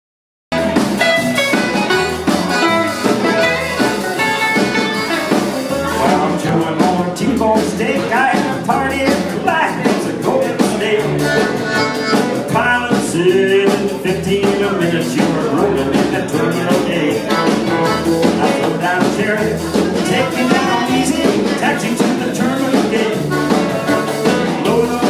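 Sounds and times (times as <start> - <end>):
live band playing dance tune: 0.5 - 25.0.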